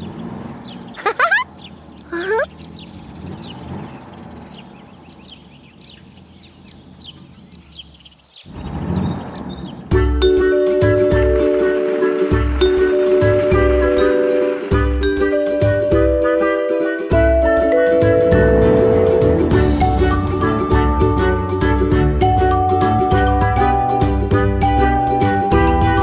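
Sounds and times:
birds chirping: 0:00.0 - 0:14.7
cartoon character exclamations: 0:02.1 - 0:02.5
children's song with bell tones: 0:22.2 - 0:26.0.

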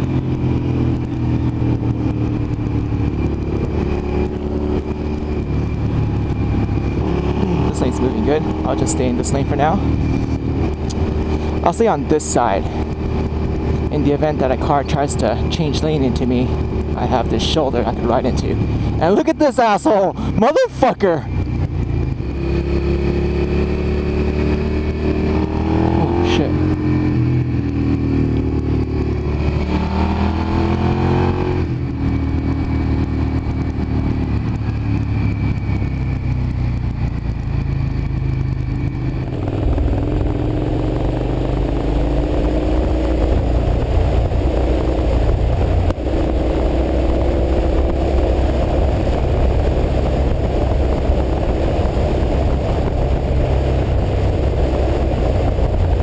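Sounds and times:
motorcycle engine revving: 0:00.0 - 0:56.0
wind and road noise: 0:00.0 - 0:56.0.

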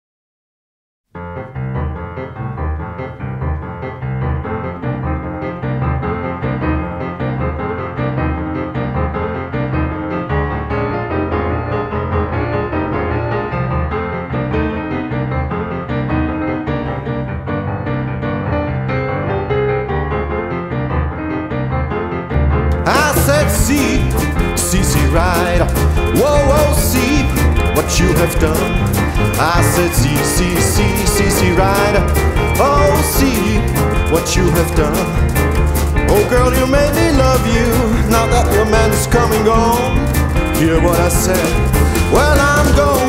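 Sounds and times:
boogie-woogie piano: 0:01.1 - 0:43.0.

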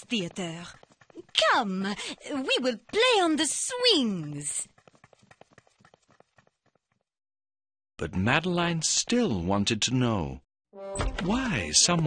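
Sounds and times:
children's quick footsteps: 0:00.0 - 0:07.1.

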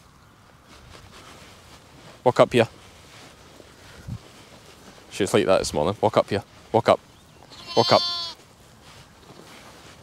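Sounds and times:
faint outdoor background: 0:00.0 - 0:10.0
sheep bleating: 0:07.4 - 0:08.4.

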